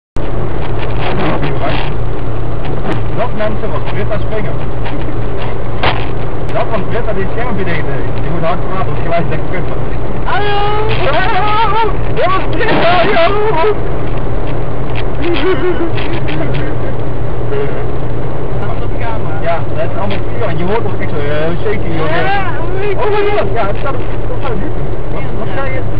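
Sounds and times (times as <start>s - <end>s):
tyre noise: 0.2s - 16.7s
wind noise: 0.2s - 18.9s
car engine and road drone: 0.2s - 25.9s.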